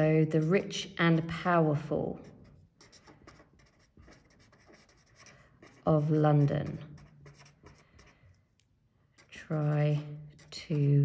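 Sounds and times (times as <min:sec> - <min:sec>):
felt-tip pen scratching on paper: 0:02.2 - 0:08.4, 0:09.2 - 0:10.9.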